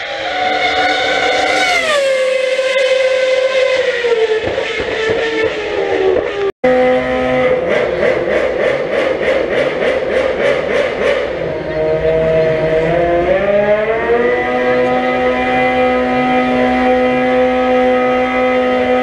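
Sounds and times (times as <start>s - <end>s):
pulsing engine note: 0.0s - 19.0s
race car engine passing: 0.0s - 19.0s.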